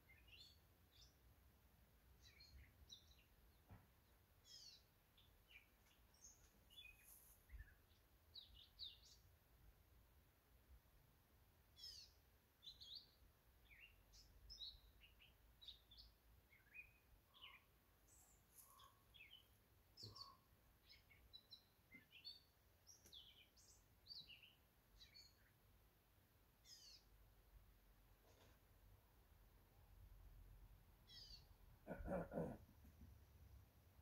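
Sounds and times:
faint birds chirping: 0.0 - 34.0.

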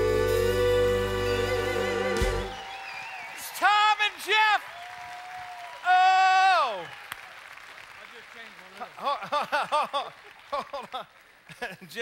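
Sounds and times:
audience applauding: 2.2 - 12.0
person whooping: 5.2 - 6.9.

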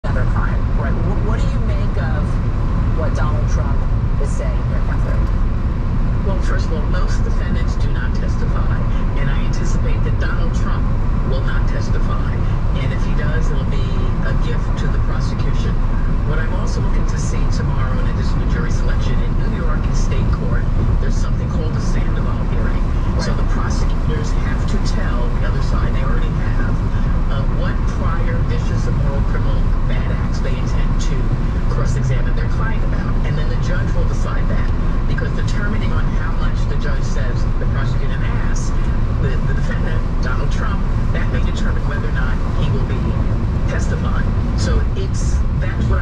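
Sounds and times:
person talking: 0.0 - 5.4, 6.2 - 46.0
road and engine rumble inside car: 0.0 - 46.0
faint radio speech: 6.2 - 46.0.

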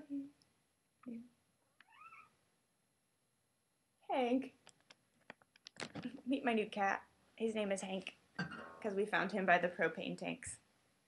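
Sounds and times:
cat meowing: 1.8 - 2.3.

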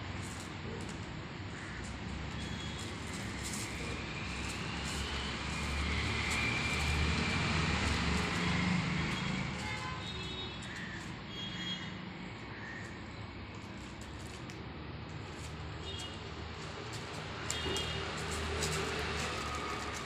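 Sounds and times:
passing vehicle engine rumble: 0.0 - 11.2, 15.2 - 20.0.

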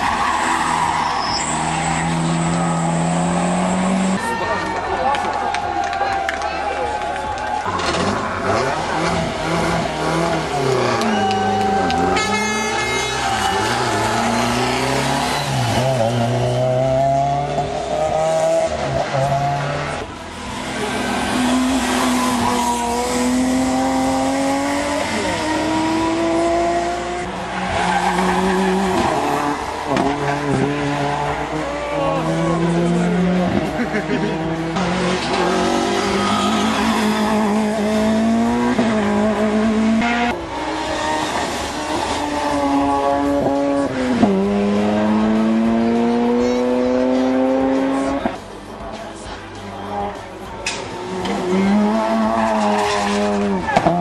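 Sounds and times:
tyre squeal: 0.0 - 3.3
rally car engines accelerating: 0.0 - 4.5, 6.7 - 54.0.

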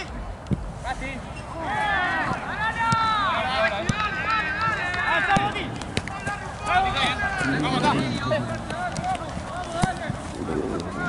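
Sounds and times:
voices shouting: 1.5 - 10.0.

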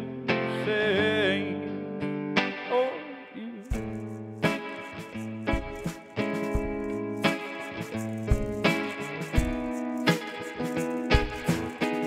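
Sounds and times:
man singing: 0.0 - 1.8, 2.6 - 3.8
strummed acoustic guitar: 0.0 - 3.0, 3.7 - 12.0.

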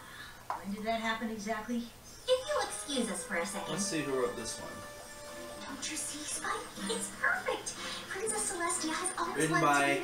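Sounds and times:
cartoon background music: 2.3 - 10.0.

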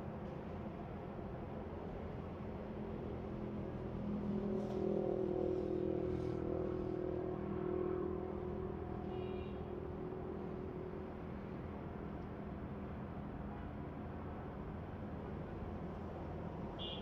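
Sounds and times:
vehicle engine humming: 3.2 - 12.7.

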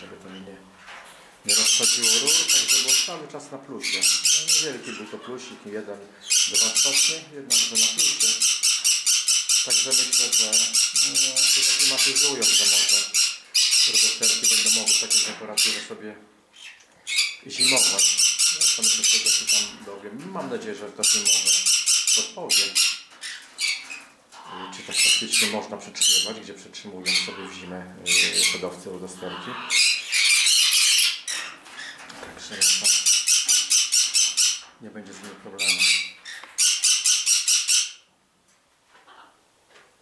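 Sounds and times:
parrots screeching: 1.5 - 3.2, 3.8 - 5.6, 6.2 - 16.0, 16.6 - 20.0, 21.0 - 34.8, 35.6 - 38.1.

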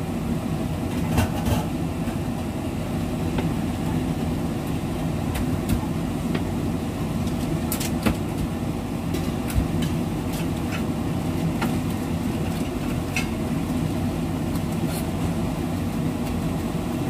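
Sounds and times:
low hum and rumble: 0.0 - 17.0.

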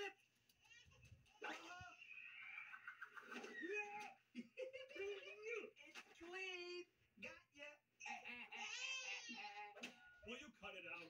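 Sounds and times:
cartoon laughter and voices from tv: 0.0 - 11.0.

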